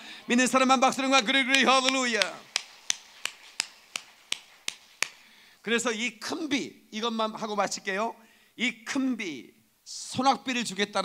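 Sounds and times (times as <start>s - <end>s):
person clapping hands: 1.4s - 5.3s.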